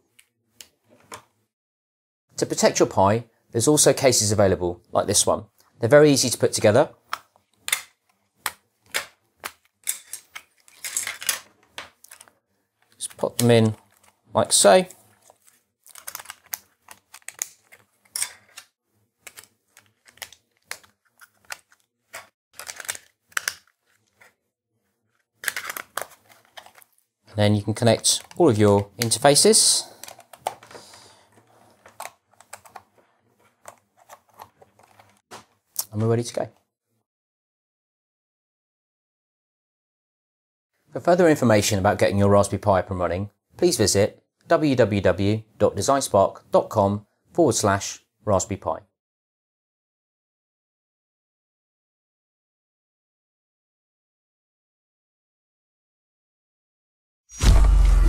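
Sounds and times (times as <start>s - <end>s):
plastic case parts clicking: 7.1s - 12.3s, 15.9s - 24.3s, 30.0s - 30.8s, 31.8s - 32.9s.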